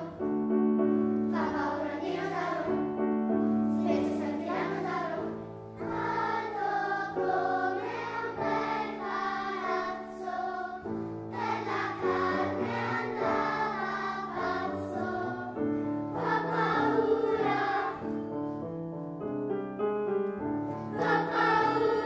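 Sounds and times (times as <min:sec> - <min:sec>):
children's choir singing: 0:00.0 - 0:00.3, 0:01.1 - 0:03.0, 0:03.7 - 0:18.3, 0:20.8 - 0:22.0.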